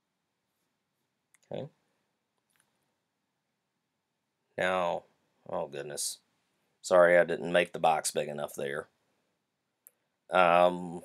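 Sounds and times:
person speaking: 1.4s - 1.8s, 4.6s - 6.2s, 6.8s - 8.9s, 10.3s - 11.0s.

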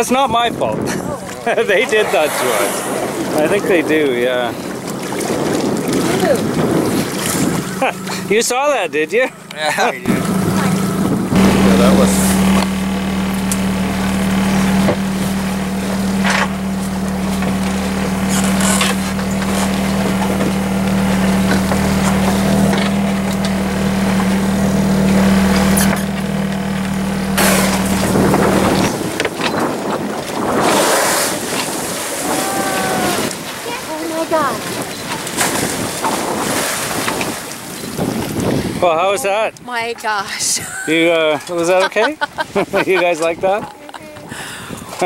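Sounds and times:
wind buffeting microphone: 0.0s - 8.3s, 9.4s - 18.3s, 27.7s - 40.2s, 42.5s - 45.0s
water washing around boat: 0.0s - 45.0s
person's voice: 42.8s - 45.0s.

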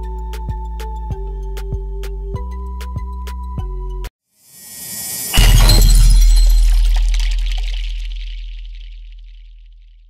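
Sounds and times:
glass shatter hit: 4.7s - 9.6s
deep boom: 5.3s - 9.9s.

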